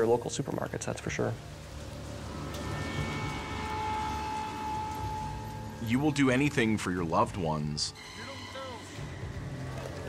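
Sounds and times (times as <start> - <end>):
high ringing tone: 2.2 - 6.8.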